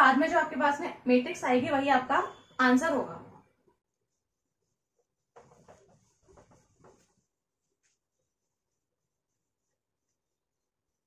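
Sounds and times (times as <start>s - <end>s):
duster wiping whiteboard: 3.9s - 11.0s.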